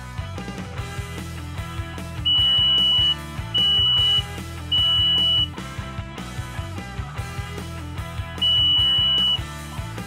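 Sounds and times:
rock music: 0:00.0 - 0:10.0
high-pitched buzzer beeping: 0:02.3 - 0:05.5, 0:08.4 - 0:09.4.

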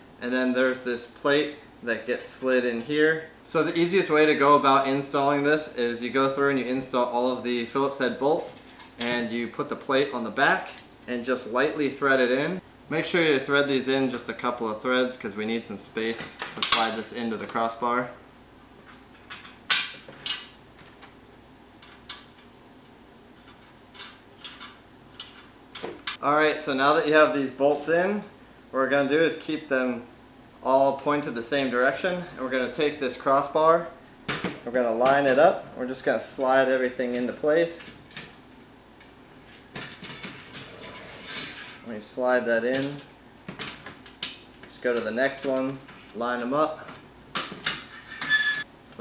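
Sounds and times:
metal hardware clinking and scraping: 0:39.8 - 0:41.9.

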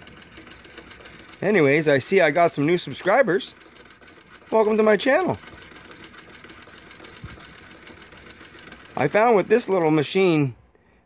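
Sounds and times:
sewing machine clatter: 0:00.0 - 0:10.5.

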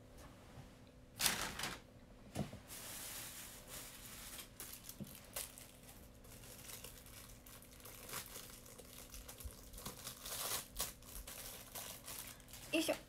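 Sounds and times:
plastic wrapping crinkling: 0:01.2 - 0:01.8, 0:02.7 - 0:13.0.

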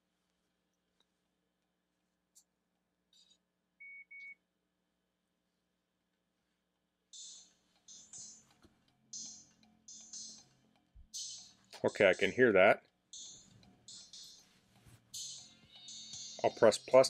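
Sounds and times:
faint tinny music from headphones: 0:07.1 - 0:17.0.

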